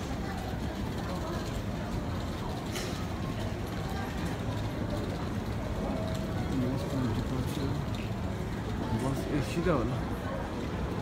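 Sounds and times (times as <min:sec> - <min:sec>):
distant crowd noise: 0:00.0 - 0:11.0.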